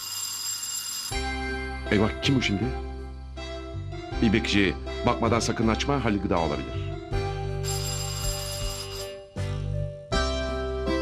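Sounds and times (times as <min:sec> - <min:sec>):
electronic doorbell ringing: 0:00.0 - 0:01.6, 0:07.6 - 0:09.4.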